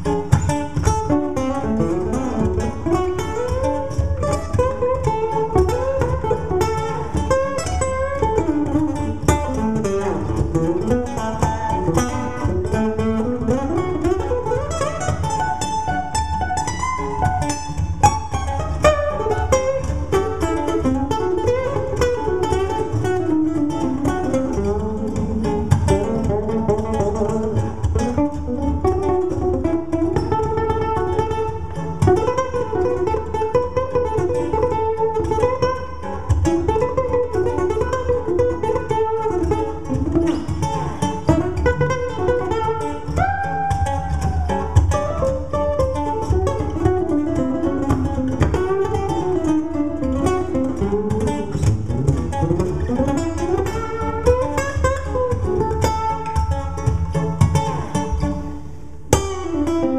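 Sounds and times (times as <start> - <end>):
fingerstyle acoustic guitar: 0.0 - 59.9.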